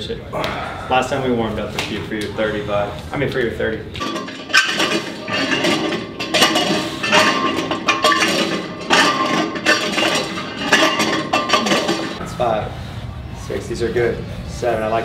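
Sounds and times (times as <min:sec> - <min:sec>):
metallic clanks of weight plates: 0:04.0 - 0:12.2.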